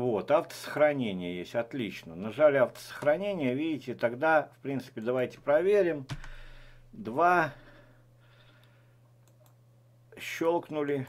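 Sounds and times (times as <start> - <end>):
computer mouse clicks: 8.6 - 9.6.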